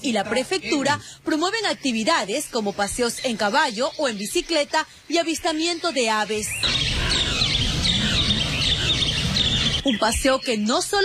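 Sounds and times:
birds chirping and calling: 0.0 - 11.0
low rumble: 6.6 - 9.8.

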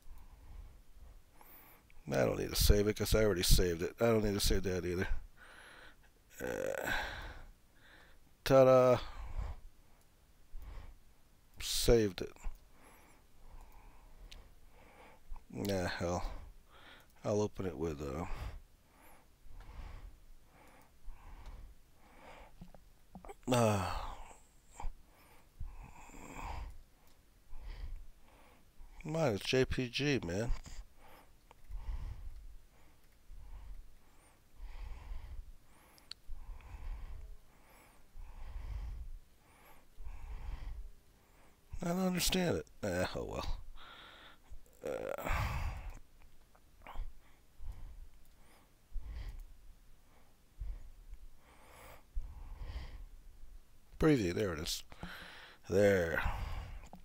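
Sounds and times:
man breathing: 0.0 - 1.9, 5.1 - 8.3, 9.0 - 11.0, 12.4 - 15.5, 16.2 - 17.2, 18.1 - 29.0, 30.5 - 41.8, 43.5 - 46.1, 46.8 - 53.2, 54.8 - 57.0
man sighing: 6.4 - 7.4, 23.2 - 24.9, 43.8 - 45.9.

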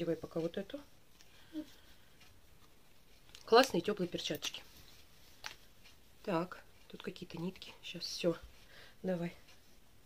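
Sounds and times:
rustling of items being handled: 0.0 - 10.0.

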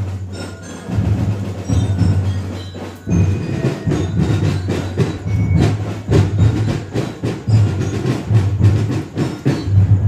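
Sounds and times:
deep steady drum beat: 0.0 - 10.0
street musicians playing fiesta music: 0.0 - 10.0.

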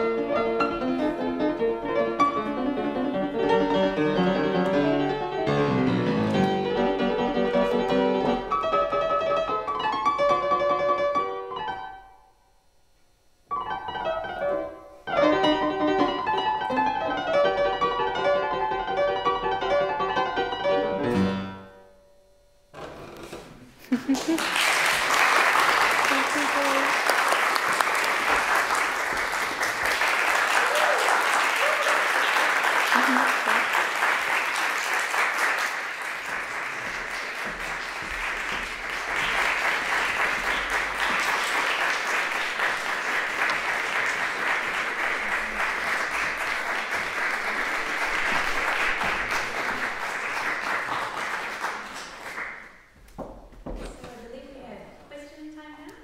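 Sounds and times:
audience applauding: 23.9 - 53.0.

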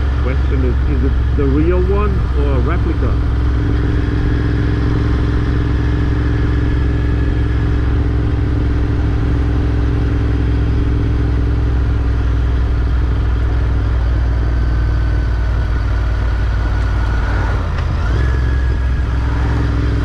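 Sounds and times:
motorcycle engine cruising: 0.0 - 20.0.

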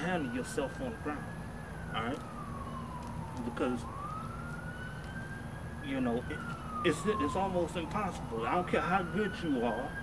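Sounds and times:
siren wailing: 0.0 - 10.0.

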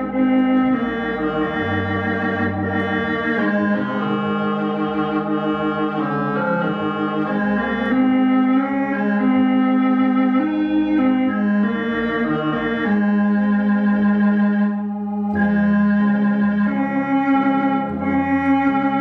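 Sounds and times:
electronic organ playing a hymn: 0.0 - 19.0.

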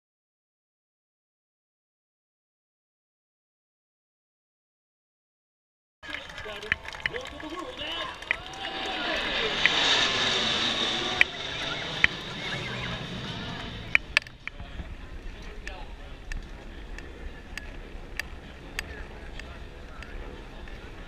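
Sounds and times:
crowd chatter: 6.0 - 21.0
military jets flying past: 6.0 - 21.0.

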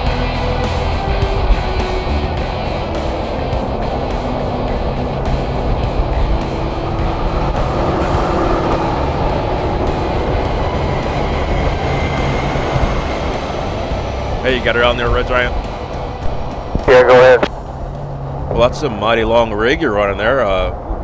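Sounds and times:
music playing: 0.0 - 20.6
road and traffic rumble: 0.0 - 21.0.

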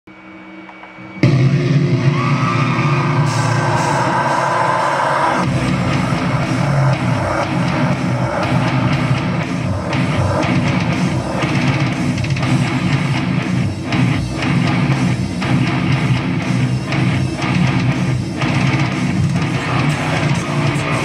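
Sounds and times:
metalcore music: 0.2 - 21.0
sliding high guitar lead: 1.1 - 21.0.

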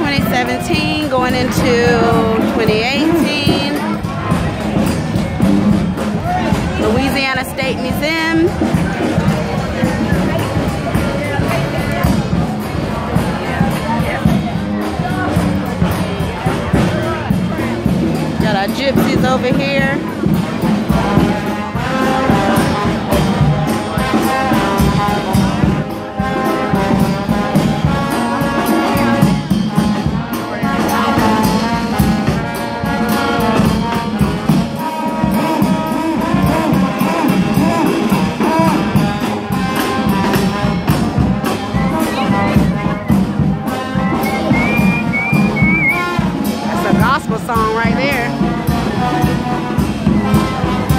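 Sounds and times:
bass drum: 0.0 - 50.9
brass band playing jazz: 0.0 - 50.9
trombone: 0.1 - 50.9.

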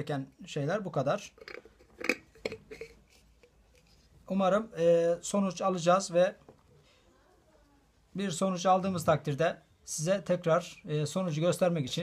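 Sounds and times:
lid twisting clicks: 1.4 - 3.0.

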